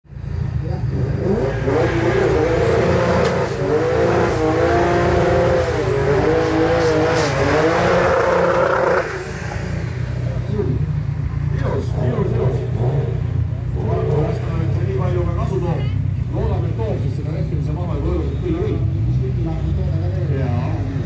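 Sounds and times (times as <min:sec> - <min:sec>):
drag car engine revving: 0:00.2 - 0:21.0.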